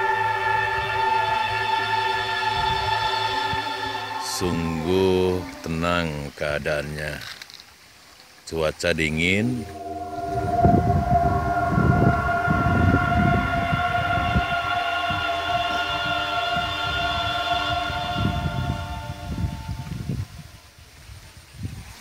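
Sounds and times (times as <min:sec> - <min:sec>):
steady tone with overtones: 0:00.0 - 0:06.2, 0:09.0 - 0:20.1
low rumble: 0:09.1 - 0:20.1.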